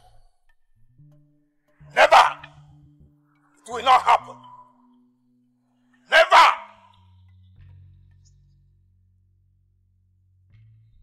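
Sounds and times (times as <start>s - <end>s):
low background music tones: 0.0s - 11.0s
man shouting: 1.9s - 2.6s, 3.7s - 4.5s, 6.1s - 6.9s.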